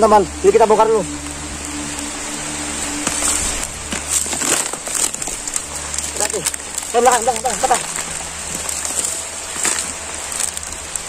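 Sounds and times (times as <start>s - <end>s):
loose earth crumbling: 2.6s - 11.0s.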